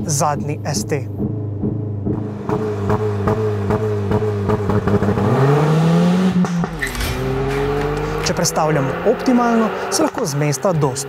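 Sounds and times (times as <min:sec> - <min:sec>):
car engine revving: 0:00.4 - 0:11.0.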